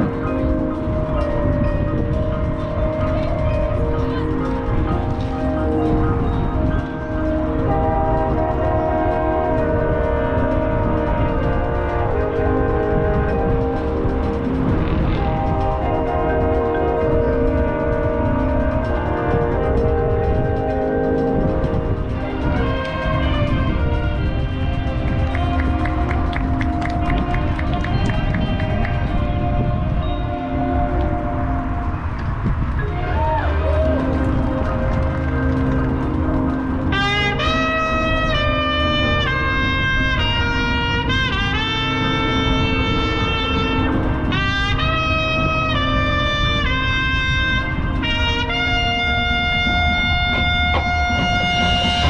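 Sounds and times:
marching band brass chords: 0:00.0 - 0:52.0.

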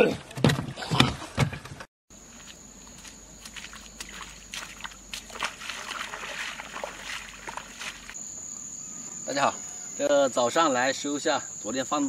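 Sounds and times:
water and mud splashing: 0:02.2 - 0:08.2.

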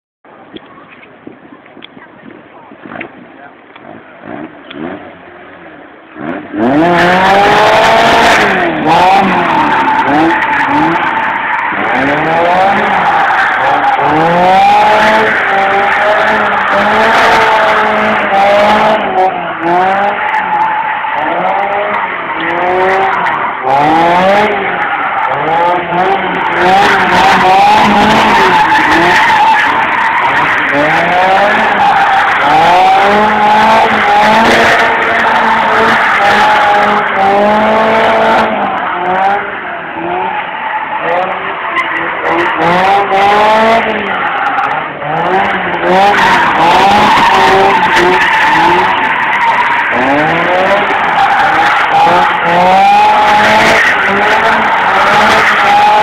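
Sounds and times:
car engine revving hard: 0:03.8 - 0:05.3, 0:06.1 - 0:56.0.

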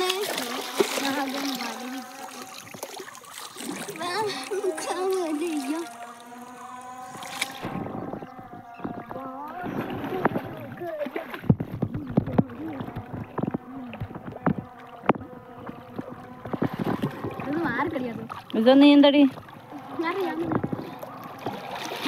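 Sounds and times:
voices: 0:00.0 - 0:02.8, 0:03.6 - 0:21.9
river water splashing: 0:00.0 - 0:22.0.

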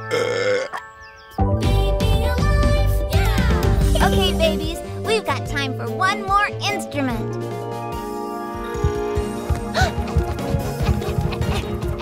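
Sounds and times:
cartoon baby burp: 0:00.0 - 0:00.9
soft background music: 0:00.0 - 0:12.0.

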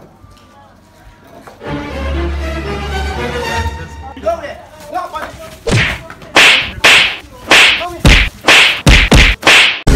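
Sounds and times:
loud whip-like lashes: 0:05.7 - 0:09.9.

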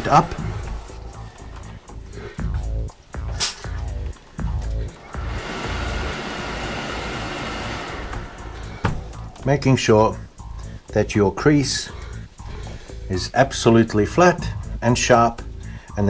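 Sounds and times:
background music: 0:00.0 - 0:16.0
steam iron hissing: 0:05.0 - 0:09.2.

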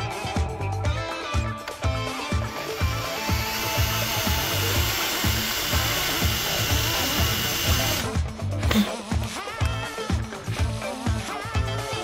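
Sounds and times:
background music with steady beat: 0:00.0 - 0:12.0
power drill boring into wood: 0:02.4 - 0:08.1.

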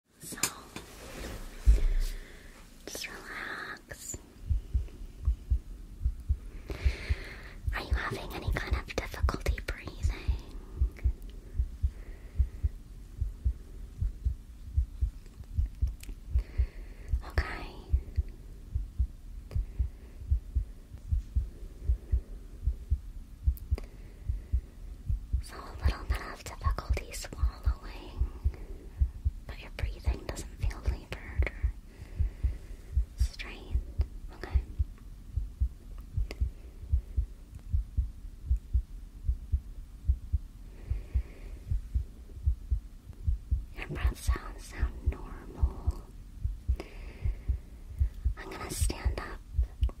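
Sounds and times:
soft whispering: 0:00.2 - 0:05.6, 0:06.2 - 0:22.8, 0:23.5 - 0:35.0, 0:43.7 - 0:50.0
heartbeat thuds: 0:01.6 - 0:02.3, 0:04.4 - 0:50.0.

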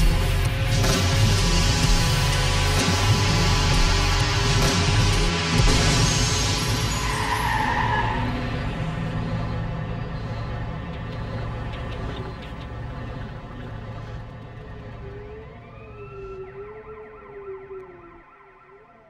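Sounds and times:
sustained low tones: 0:08.3 - 0:19.0
wavering wail: 0:13.2 - 0:19.0.

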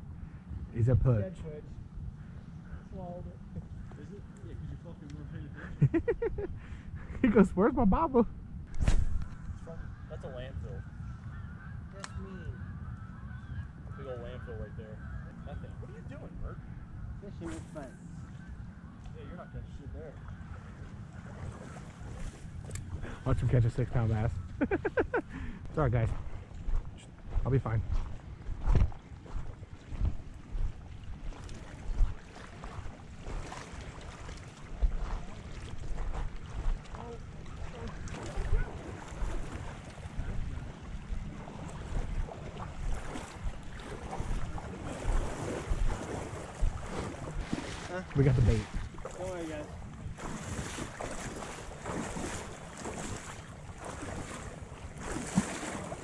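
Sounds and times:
wind buffeting microphone: 0:00.0 - 0:56.0
water moving at surface: 0:19.9 - 0:25.3, 0:26.0 - 0:56.0.

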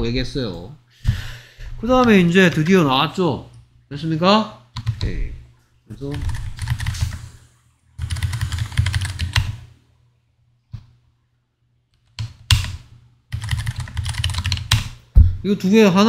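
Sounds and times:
typing on computer keyboard: 0:04.8 - 0:05.1, 0:06.1 - 0:07.2, 0:08.0 - 0:09.6, 0:12.0 - 0:15.0.

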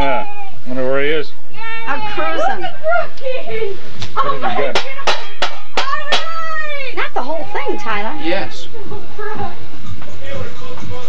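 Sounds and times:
people talking and exclaiming: 0:00.0 - 0:11.0.

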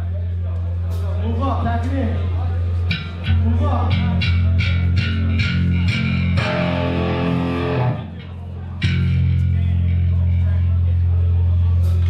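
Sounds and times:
electric guitar picked hits: 0:02.9 - 0:09.4
bass note ringing: 0:02.9 - 0:10.2.

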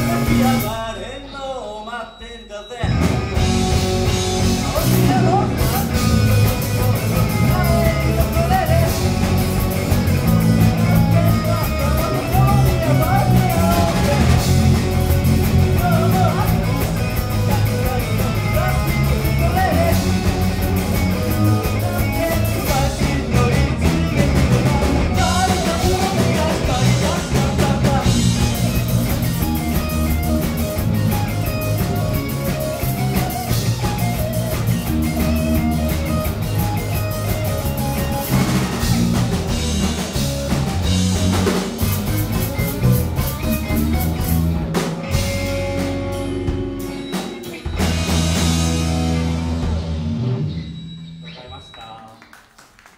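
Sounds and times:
drum kit: 0:00.0 - 0:01.0, 0:02.8 - 0:52.1
lead singer singing: 0:00.0 - 0:03.4, 0:04.6 - 0:29.4
bass guitar: 0:00.0 - 0:52.1
electric guitars: 0:00.0 - 0:52.7.

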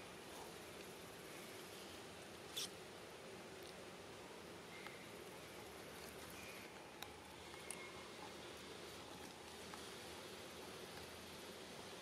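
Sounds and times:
faint steady background: 0:00.0 - 0:12.0.

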